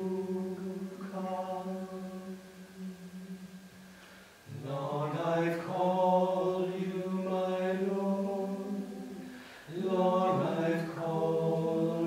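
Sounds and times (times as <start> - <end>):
men singing a slow chant: 0.0 - 3.6, 4.5 - 12.0.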